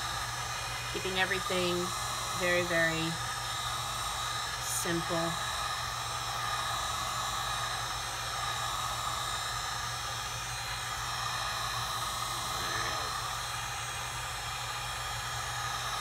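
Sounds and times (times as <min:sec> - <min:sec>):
heat gun blowing hiss: 0:00.0 - 0:16.0.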